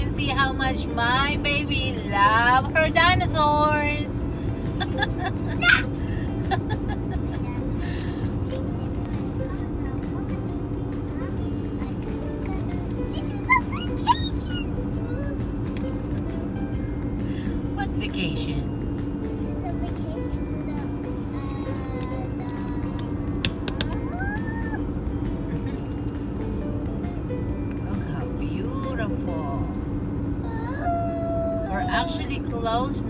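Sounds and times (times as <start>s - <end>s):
car road and engine noise: 0.0s - 33.0s
person laughing: 4.8s - 5.8s, 6.4s - 7.4s.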